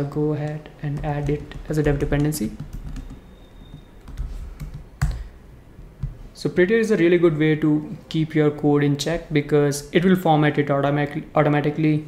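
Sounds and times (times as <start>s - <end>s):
computer keyboard typing: 0.8s - 5.3s.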